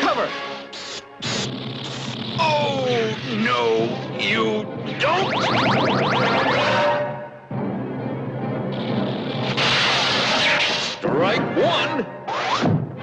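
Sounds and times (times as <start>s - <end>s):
dramatic orchestral music: 2.4s - 13.0s
loud noisy crash: 9.4s - 10.9s.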